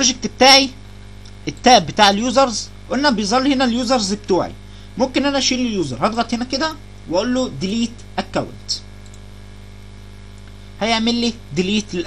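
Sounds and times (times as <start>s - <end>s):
man talking: 0.0s - 0.8s, 1.4s - 8.9s, 10.8s - 12.0s
electrical mains hum: 0.0s - 12.0s.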